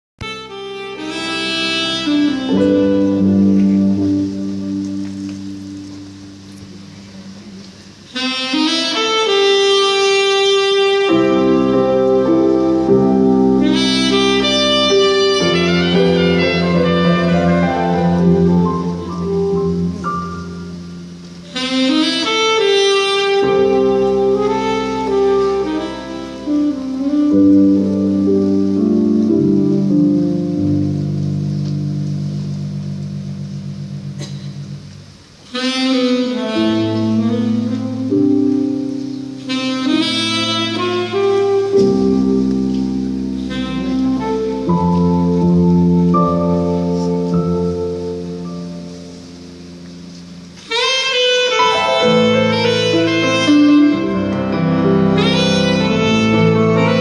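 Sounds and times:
live band playing sustained chord: 0.2 - 57.0.

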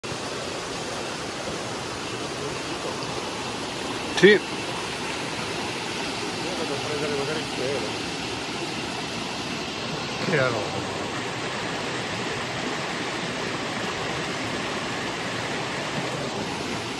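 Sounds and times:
stream running over rocks: 0.0 - 16.9.

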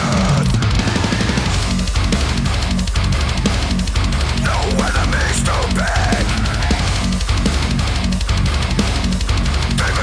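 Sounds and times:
distorted electric guitars: 0.0 - 10.0
drum kit with cymbals: 0.0 - 10.0.

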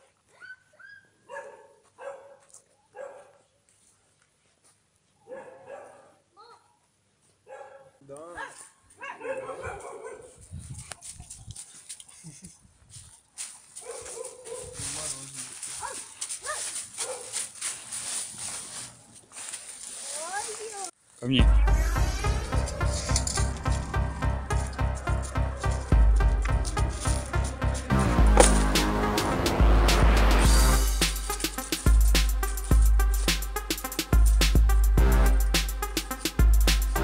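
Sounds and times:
dog barking: 0.4 - 3.4, 5.2 - 6.2, 7.4 - 10.4, 13.8 - 14.8, 15.7 - 17.4
dry leaves rustling: 12.8 - 21.3, 22.5 - 28.9, 30.7 - 34.3.

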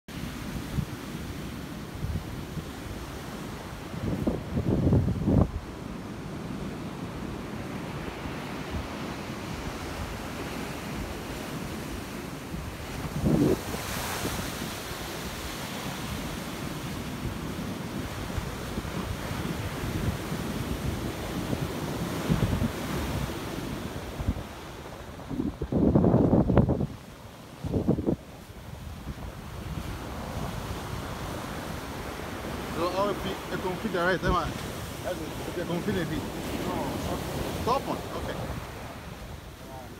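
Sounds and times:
ocean surf washing on beach: 0.1 - 39.9
wind buffeting microphone: 0.2 - 39.9.

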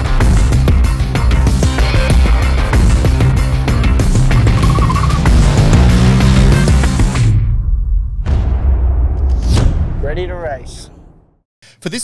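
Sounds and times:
intro music: 2.1 - 7.9
motorcycle engine: 2.6 - 7.3.

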